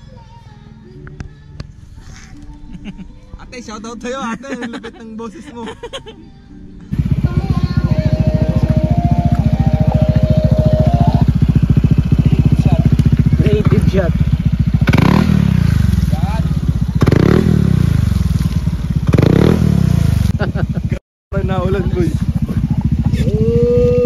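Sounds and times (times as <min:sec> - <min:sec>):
scooter engine revving: 0:06.9 - 0:24.0
tyre churning water spray: 0:17.0 - 0:20.5.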